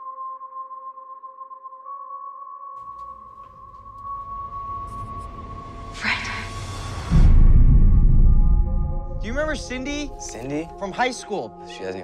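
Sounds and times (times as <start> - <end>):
low rumbling drone: 3.2 - 10.9.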